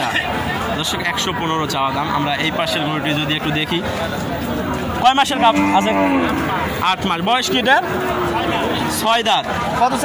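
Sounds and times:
men's voices: 0:00.0 - 0:10.0
cow mooing: 0:05.3 - 0:06.6, 0:07.7 - 0:09.0.

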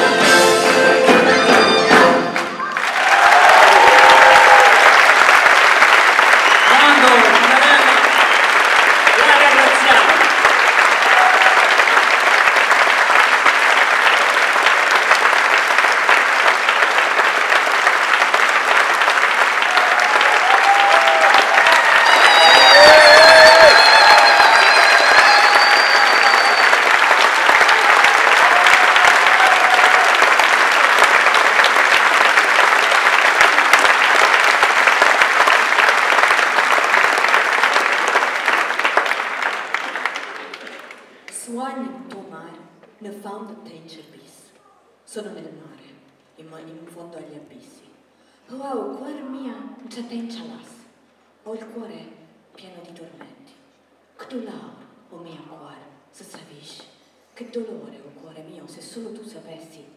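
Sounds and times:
audience applauding: 0:00.0 - 0:41.4
whistle: 0:21.9 - 0:27.0.

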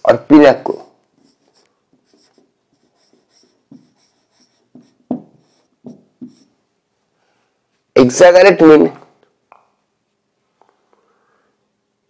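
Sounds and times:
marker squeaking on whiteboard: 0:00.6 - 0:06.6
pen tapping on board: 0:04.7 - 0:06.4.

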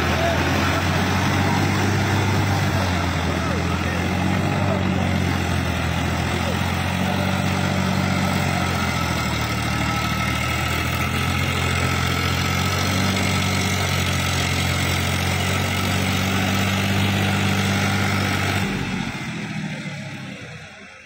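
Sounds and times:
rotavator churning mud: 0:00.0 - 0:20.1
tractor diesel engine running: 0:00.0 - 0:21.0.

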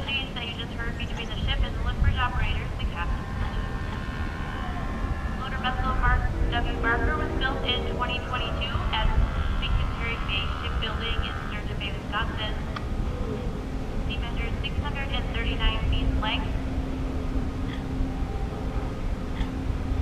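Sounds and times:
indistinct voices talking: 0:00.0 - 0:20.0
steady low rumble: 0:00.0 - 0:20.0.

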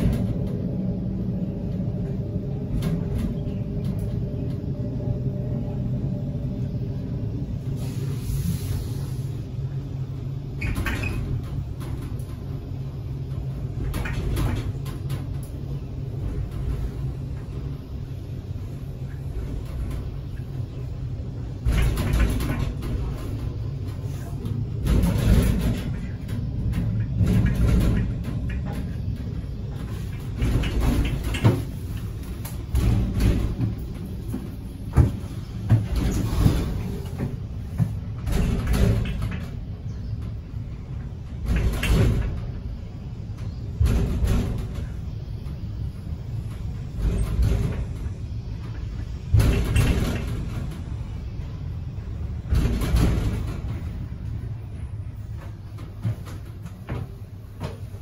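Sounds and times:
lift low rumble: 0:00.0 - 0:58.0
wind gusts: 0:00.0 - 0:58.0.

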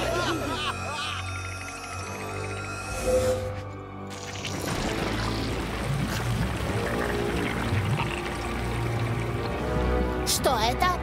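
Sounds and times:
music: 0:00.0 - 0:11.0
cartoon goo oozing and gushing: 0:04.1 - 0:09.6.

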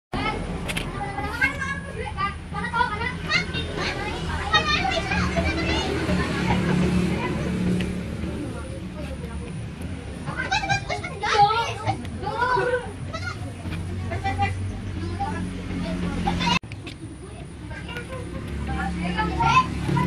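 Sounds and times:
children chattering and calling: 0:00.1 - 0:20.0.

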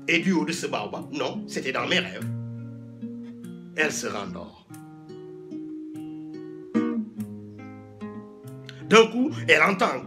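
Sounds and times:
acoustic guitar plucked: 0:00.0 - 0:10.0.

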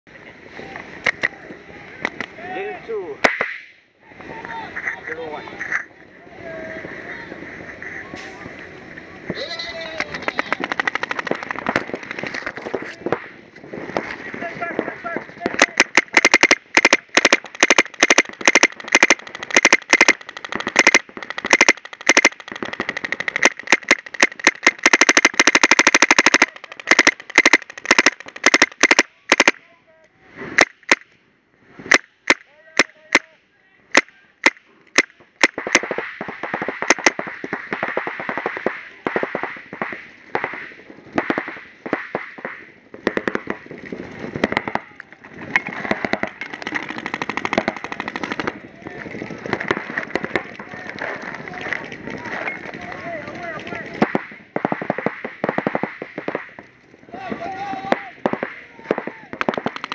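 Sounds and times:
paintball markers firing: 0:03.2 - 0:03.7, 0:10.0 - 0:29.6, 0:30.5 - 0:31.2, 0:31.9 - 0:59.9.

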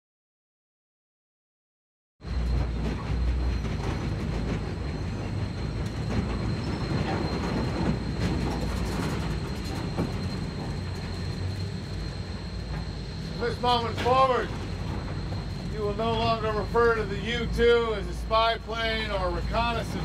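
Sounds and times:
low rumble: 0:02.3 - 0:20.0
thin high whine: 0:02.3 - 0:20.0.

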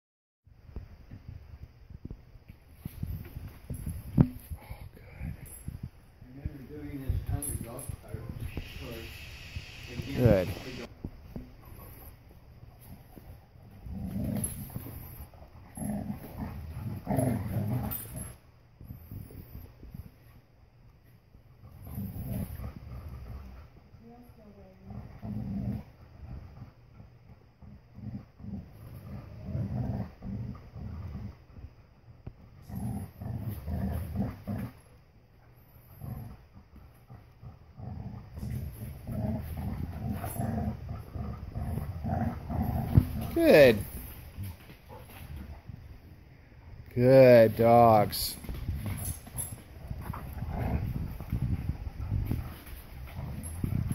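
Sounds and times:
dogs play-growling: 0:02.7 - 0:46.9, 0:48.4 - 0:53.9.

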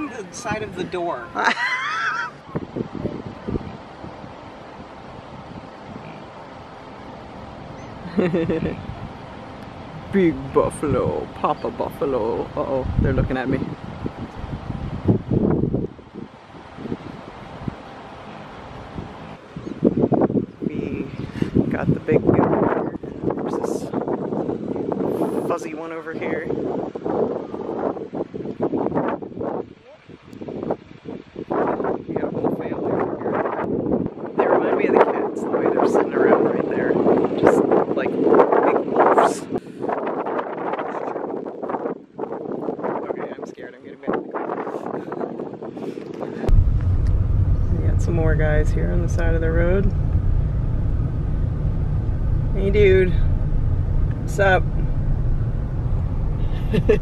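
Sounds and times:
steady low rumble: 0:00.0 - 0:29.6, 0:44.8 - 0:57.0
wind buffeting microphone: 0:00.0 - 0:57.0.

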